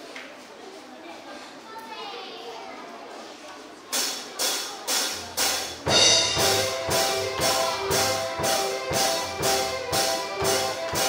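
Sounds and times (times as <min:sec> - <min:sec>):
murmur of children's voices: 0:00.0 - 0:11.0
percussion strokes: 0:04.0 - 0:11.0
keyboard chords: 0:05.5 - 0:11.0
low bass notes: 0:05.7 - 0:11.0.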